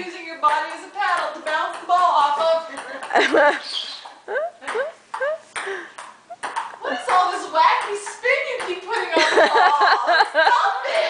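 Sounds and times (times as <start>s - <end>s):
ping-pong ball hitting table and paddle: 0.4s - 9.2s
people laughing: 3.1s - 3.7s, 9.1s - 11.0s.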